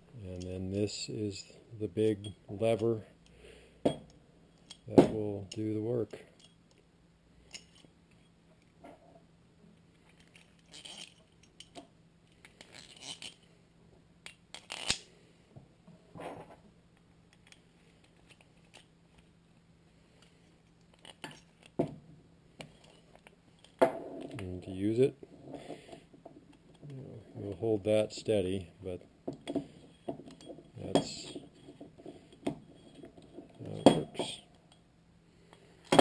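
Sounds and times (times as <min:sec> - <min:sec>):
metal parts scraping: 0:10.0 - 0:11.7, 0:12.3 - 0:13.5, 0:14.5 - 0:15.0
metal parts clicking: 0:10.0 - 0:13.4, 0:14.2 - 0:15.1.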